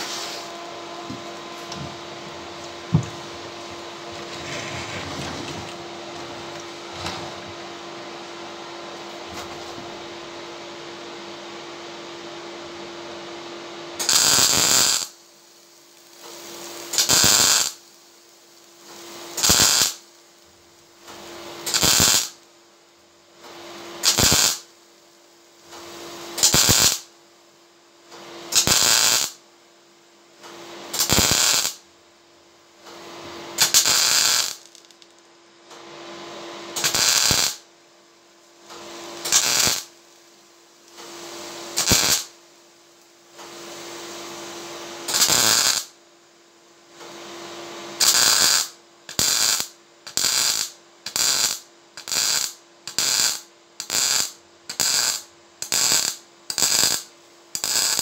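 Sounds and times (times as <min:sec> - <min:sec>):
steady hum: 0:00.0 - 0:28.0
welder arc crackling: 0:14.0 - 0:22.5, 0:23.7 - 0:24.8, 0:25.6 - 0:27.1, 0:28.5 - 0:29.4, 0:30.9 - 0:31.8, 0:33.6 - 0:35.2, 0:36.8 - 0:37.6, 0:39.1 - 0:42.4, 0:45.1 - 0:45.9, 0:48.0 - 0:58.0.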